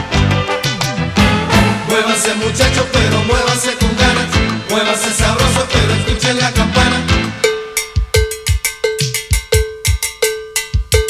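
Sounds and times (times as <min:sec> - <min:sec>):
salsa band playing: 0:00.0 - 0:09.8
cowbell ringing: 0:07.3 - 0:11.0.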